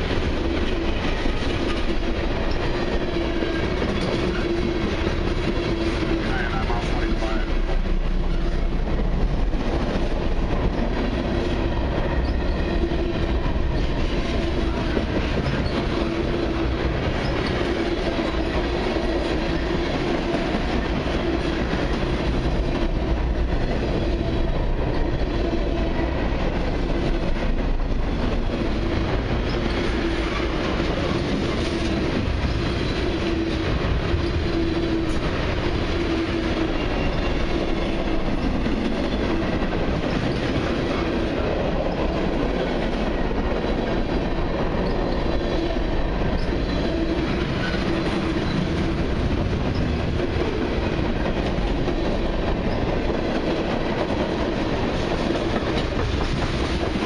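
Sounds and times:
clickety-clack over rail joints: 0:00.0 - 0:57.0
steel wheels rumbling on rail: 0:00.0 - 0:57.0.

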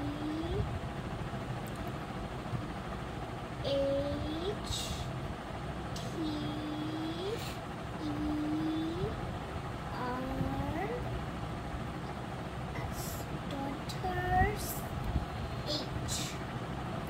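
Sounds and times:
steady background noise: 0:00.0 - 0:17.0.

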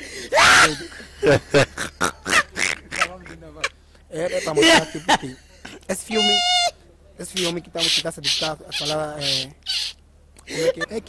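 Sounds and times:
men laughing: 0:00.0 - 0:06.7, 0:07.3 - 0:11.0.

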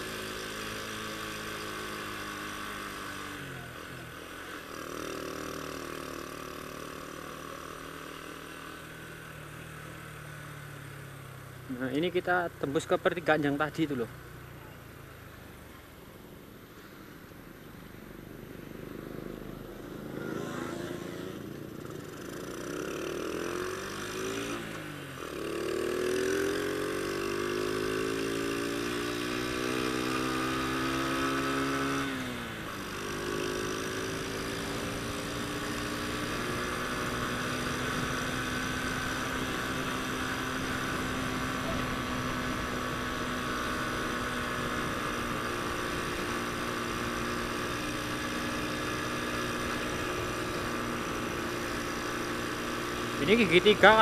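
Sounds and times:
motorcycle engine accelerating: 0:00.0 - 0:54.0.

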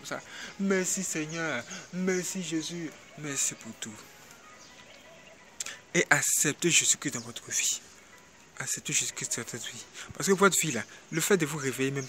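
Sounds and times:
man speaking: 0:00.0 - 0:04.2, 0:05.6 - 0:08.0, 0:08.6 - 0:12.0
background hiss: 0:00.0 - 0:12.0.

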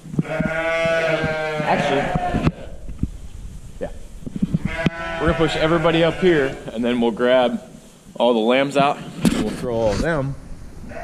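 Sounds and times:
sheep bleating: 0:00.2 - 0:02.8, 0:04.6 - 0:06.8.

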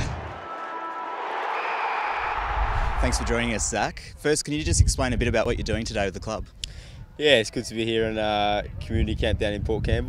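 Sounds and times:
noisy whoosh: 0:02.0 - 0:03.8.

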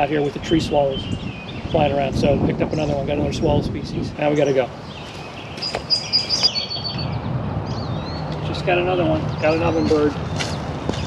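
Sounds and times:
outdoor background noise: 0:00.0 - 0:11.0
songbird singing: 0:00.0 - 0:11.0
high bird chirps: 0:04.4 - 0:08.6.

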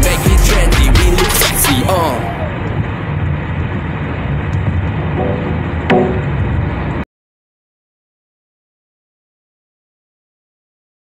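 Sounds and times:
car road and engine noise: 0:00.0 - 0:07.1
sung note: 0:05.2 - 0:06.4.

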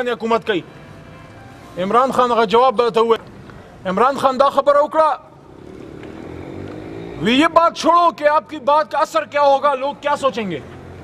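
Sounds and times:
vehicle engine humming: 0:00.0 - 0:11.0.

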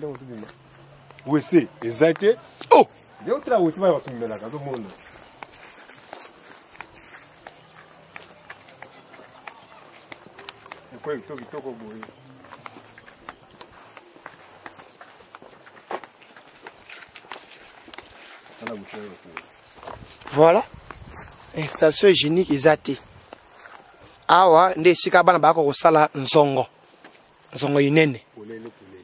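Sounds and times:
dry grass rustling: 0:00.0 - 0:24.6
footsteps on a path: 0:00.0 - 0:28.0
insect chirping: 0:00.0 - 0:29.0.

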